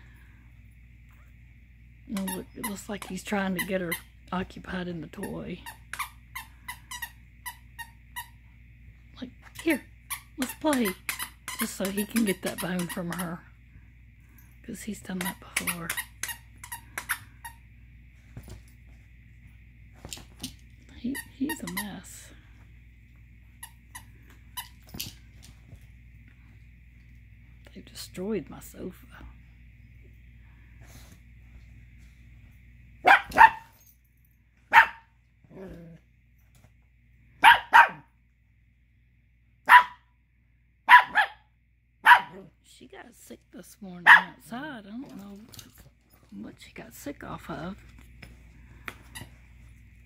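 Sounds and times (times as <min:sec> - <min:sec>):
puppy barking: 0:33.0 - 0:33.7, 0:34.7 - 0:35.1, 0:37.4 - 0:38.1, 0:39.6 - 0:40.1, 0:40.9 - 0:42.5, 0:44.0 - 0:44.4.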